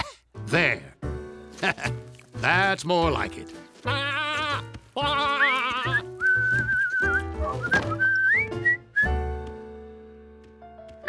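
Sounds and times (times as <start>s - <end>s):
soft background music: 0.0s - 11.0s
person whistling a tune: 5.9s - 9.3s.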